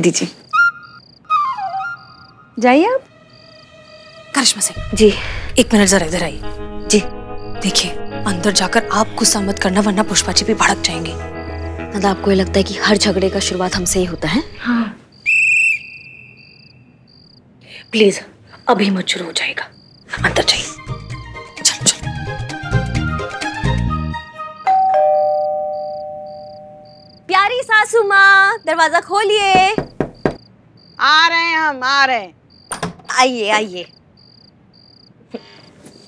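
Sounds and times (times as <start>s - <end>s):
cricket chirping: 0.0s - 21.9s, 25.2s - 36.0s
high whistle tone: 15.2s - 16.8s.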